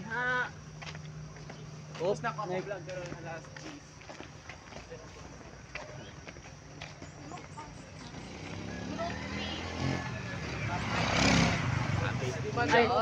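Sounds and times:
vehicle engine passing by: 0:07.6 - 0:13.0.

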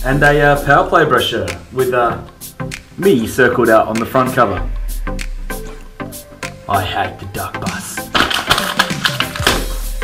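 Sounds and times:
background music: 0:00.0 - 0:10.0
paper rustling: 0:08.1 - 0:09.8.

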